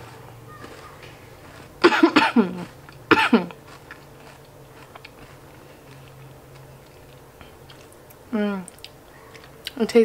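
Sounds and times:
mouth chewing: 0:00.0 - 0:09.9.

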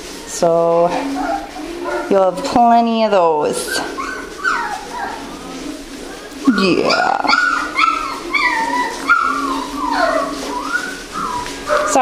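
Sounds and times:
puppy whimpering: 0:00.9 - 0:12.0.

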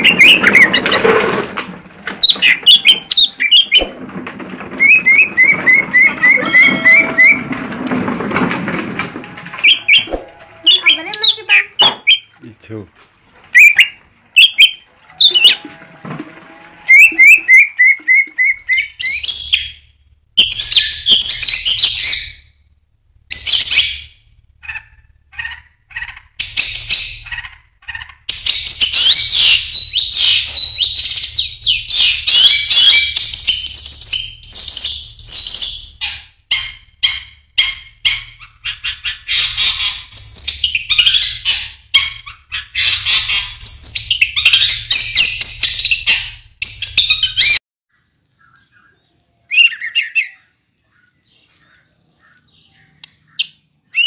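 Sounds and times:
songbirds singing: 0:00.0 - 0:01.3, 0:02.1 - 0:07.7, 0:09.6 - 0:12.5, 0:16.8 - 0:22.7, 0:23.3 - 0:54.0.

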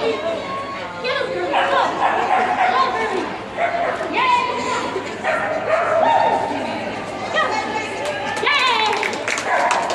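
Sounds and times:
people chattering: 0:00.0 - 0:09.9
dog barking: 0:01.5 - 0:03.0, 0:03.6 - 0:04.0, 0:05.2 - 0:06.4, 0:09.5 - 0:09.9.

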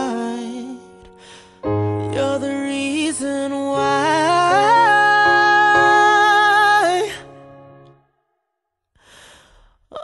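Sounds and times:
breathy sigh: 0:09.0 - 0:09.8.

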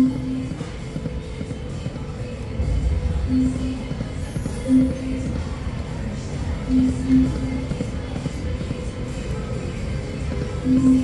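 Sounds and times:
low background din: 0:00.0 - 0:11.0.

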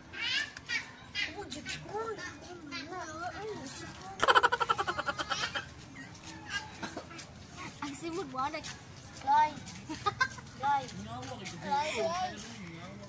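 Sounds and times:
burst of rapid laughter: 0:04.2 - 0:05.7.

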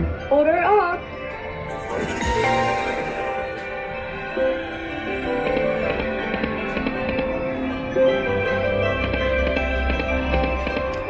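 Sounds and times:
chiming tones: 0:01.2 - 0:08.6
slot machine bonus music: 0:01.7 - 0:06.4.

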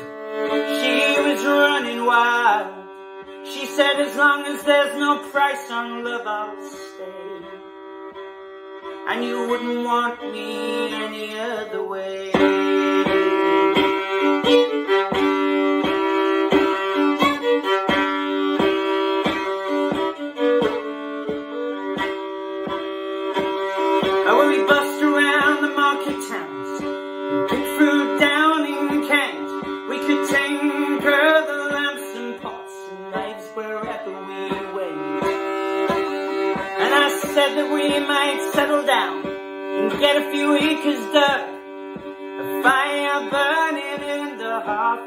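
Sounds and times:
fiddle melody: 0:00.0 - 0:45.0
plucked string beat: 0:00.0 - 0:45.0.

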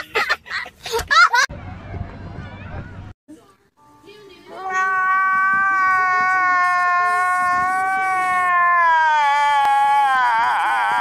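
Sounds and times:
man wailing high cry: 0:04.6 - 0:11.0.

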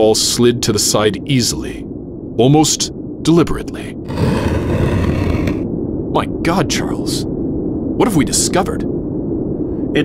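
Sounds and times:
low rumble: 0:03.8 - 0:10.0
stone wall grinding scrape: 0:04.1 - 0:05.6.

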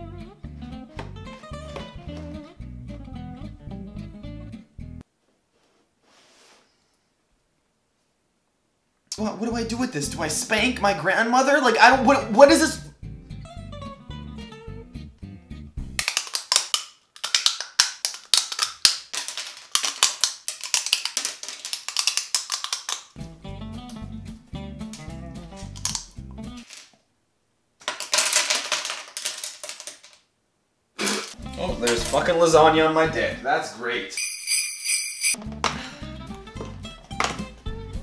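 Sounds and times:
guitar background music: 0:00.0 - 0:05.0, 0:11.9 - 0:16.0, 0:23.2 - 0:26.6, 0:31.4 - 0:33.5, 0:35.4 - 0:38.0.

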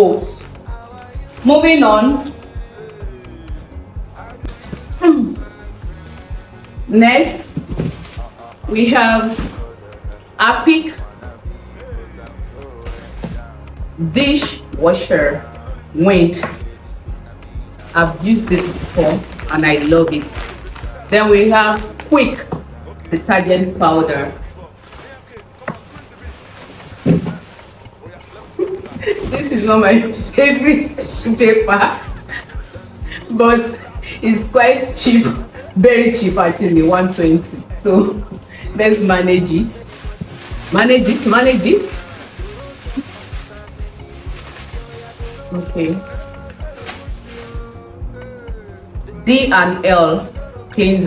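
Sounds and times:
music with steady beat: 0:00.0 - 0:51.0
groceries rustling in cardboard box: 0:04.4 - 0:06.6, 0:07.3 - 0:09.8, 0:18.4 - 0:22.6, 0:24.4 - 0:30.4, 0:36.2 - 0:47.8.

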